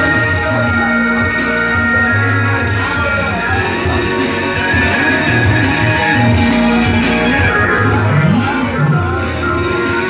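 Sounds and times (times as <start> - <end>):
held bass notes: 0.0 - 10.0
plucked guitar-like notes: 0.0 - 10.0.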